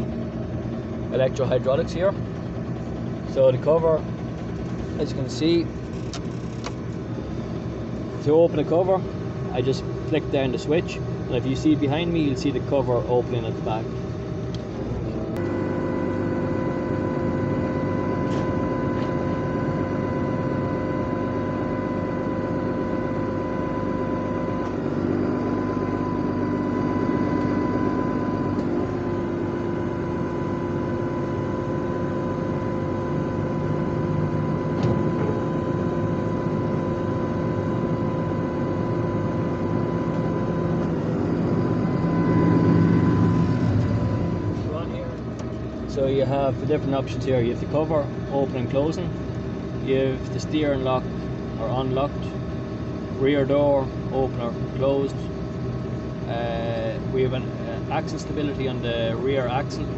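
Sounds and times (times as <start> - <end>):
hydraulic whine: 0.0 - 59.9
tractor engine running: 0.0 - 59.9.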